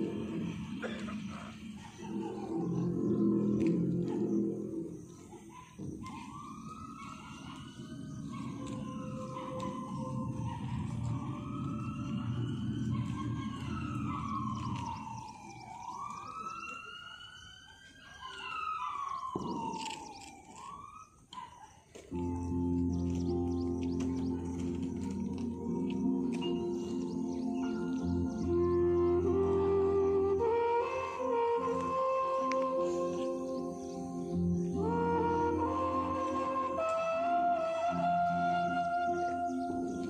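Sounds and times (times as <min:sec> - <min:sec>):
low rumbling noise: 0:00.0 - 0:05.2, 0:06.3 - 0:16.2
backing music: 0:00.0 - 0:15.5, 0:22.2 - 0:40.0
wailing siren: 0:00.0 - 0:21.4, 0:22.1 - 0:40.0.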